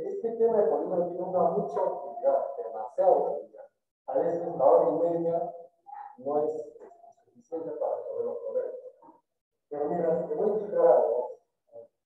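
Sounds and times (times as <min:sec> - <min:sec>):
man speaking muffled: 0:00.0 - 0:09.1, 0:09.7 - 0:11.8.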